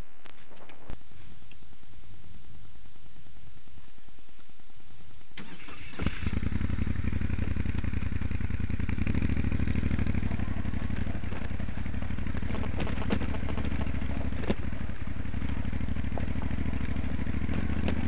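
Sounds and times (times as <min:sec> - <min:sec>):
motorcycle engine running: 0:05.1 - 0:18.0
motorcycle starter turning: 0:05.4 - 0:15.8
tyres on gravel: 0:05.4 - 0:18.0.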